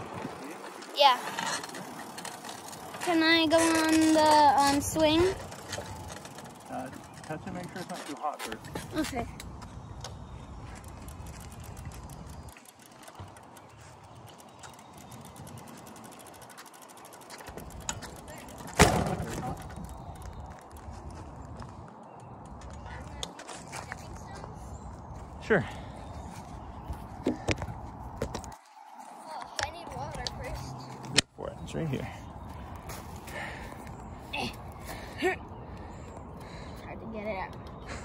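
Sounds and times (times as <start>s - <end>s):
wind rumbling on microphone: 0.0s - 1.5s, 17.5s - 31.2s
bicycle rattling: 0.0s - 31.0s, 31.7s - 38.0s.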